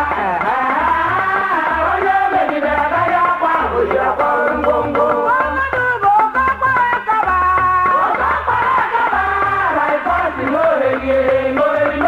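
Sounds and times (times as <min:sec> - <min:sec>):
women singing: 0:00.0 - 0:12.0.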